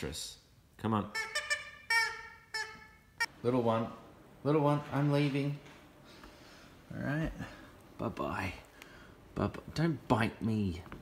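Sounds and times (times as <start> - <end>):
squeaky dog toy squeaking: 1.0 - 3.3.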